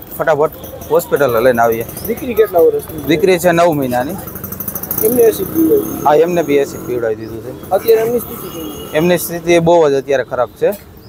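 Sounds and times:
man speaking into microphones: 5.0 - 10.9.

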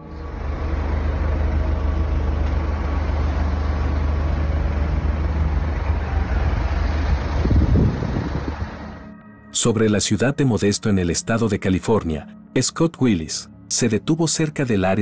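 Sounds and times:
cars driving past: 0.0 - 9.2.

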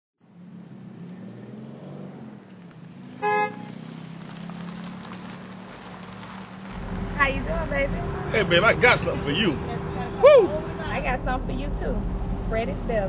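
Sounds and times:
road traffic engine hum: 0.2 - 13.0
short car horn toot: 3.2 - 3.7.

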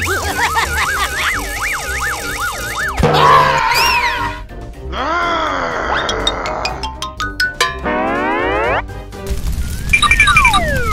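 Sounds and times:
music: 0.0 - 10.9
short plinking notes: 6.6 - 8.1
tone gliding upward: 6.6 - 8.8.

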